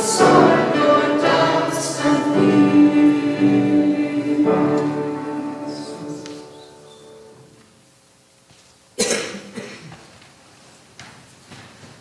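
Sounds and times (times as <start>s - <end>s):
congregation singing a hymn: 0.0s - 7.6s
person coughing: 9.0s - 10.0s.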